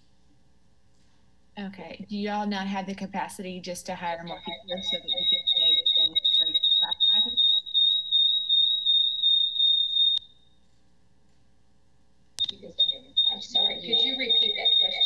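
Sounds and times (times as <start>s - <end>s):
faint broken speech: 2.9s - 7.4s, 12.4s - 15.0s
high-pitched whine: 4.0s - 10.4s, 12.4s - 15.0s.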